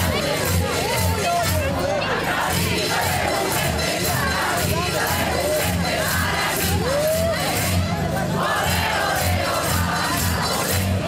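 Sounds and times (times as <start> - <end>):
crowd shouting: 0.0 - 11.0
marching band drums: 2.4 - 11.0.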